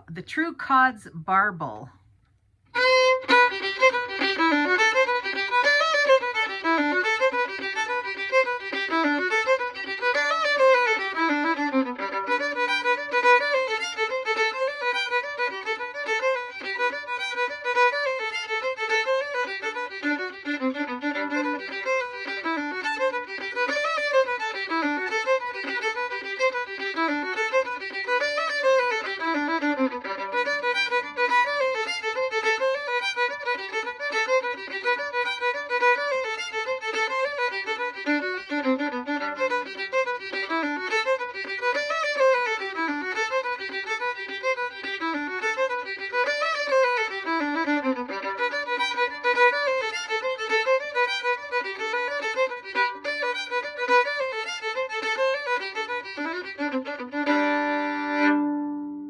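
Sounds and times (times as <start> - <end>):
solo fiddle tune: 2.7 - 59.0.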